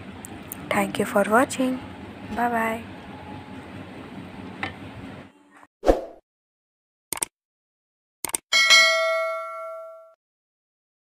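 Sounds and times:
quick double clicks: 7.1s - 7.3s, 8.2s - 8.4s
notification bell ding: 8.6s - 10.2s.

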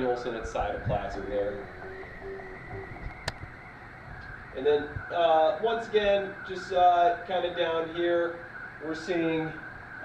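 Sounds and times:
sharp click: 3.0s - 3.5s.

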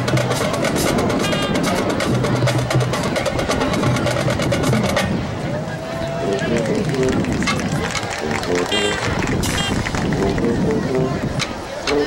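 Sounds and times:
drum line playing: 0.0s - 5.1s, 6.8s - 10.6s
crowd voices: 0.0s - 12.0s
short pitched band notes: 8.6s - 9.9s.

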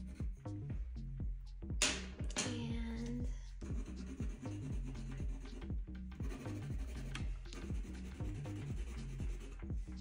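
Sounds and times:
background music with low beat: 0.0s - 10.0s
pencil scratching on paper: 3.6s - 10.0s.

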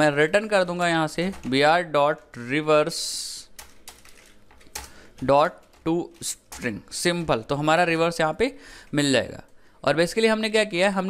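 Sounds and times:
keyboard keystrokes clicking: 3.5s - 6.8s.

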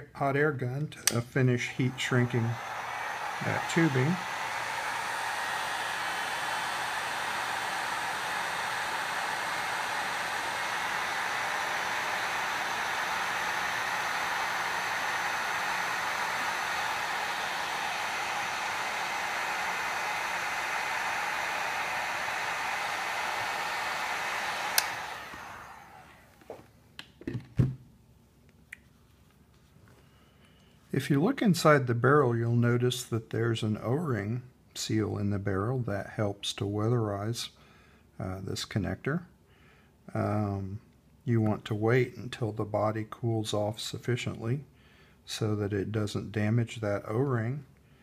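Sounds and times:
hot air gun blowing: 1.0s - 26.4s.

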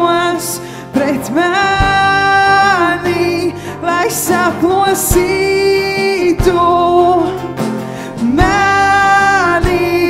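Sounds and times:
strummed acoustic guitar: 0.0s - 10.0s
woman singing: 0.0s - 10.0s
drums: 1.7s - 3.3s, 4.2s - 10.0s.

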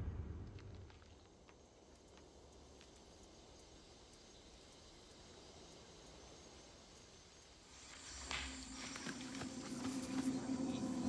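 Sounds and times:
faint steady hiss: 0.6s - 10.5s.

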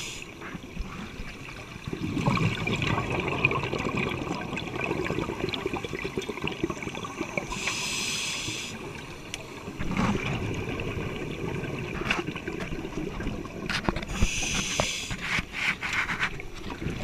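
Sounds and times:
scuba regulator hiss: 0.0s - 0.3s, 7.5s - 8.8s, 14.1s - 15.2s
underwater crackling and gurgling: 0.0s - 17.0s
exhaled air bubbling: 1.3s - 15.4s.

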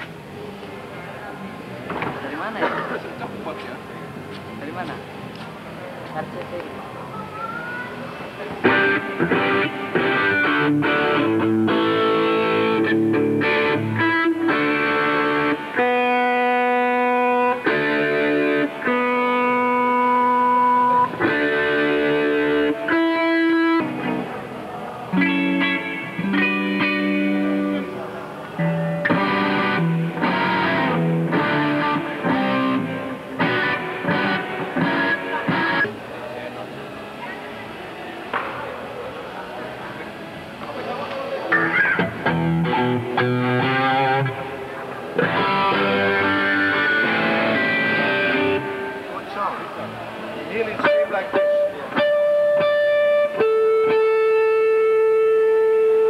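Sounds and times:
solo electric guitar melody: 6.0s - 38.5s, 41.4s - 56.0s.

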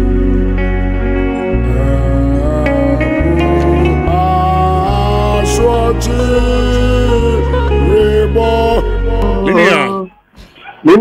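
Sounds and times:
music: 0.0s - 10.1s.

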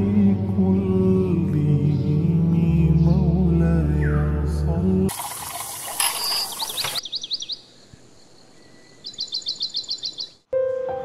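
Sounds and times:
tap water running onto plate: 5.1s - 7.0s
bird chirping: 5.9s - 10.5s.

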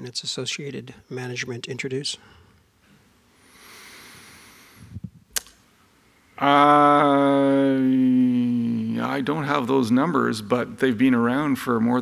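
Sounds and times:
faint breath-like hiss: 2.1s - 5.1s
sharp click: 5.3s - 5.6s.

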